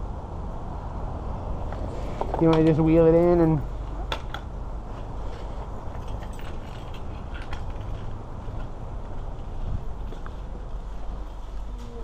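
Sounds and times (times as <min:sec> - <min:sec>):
scooter clicks and rattles: 0:01.7 - 0:10.4.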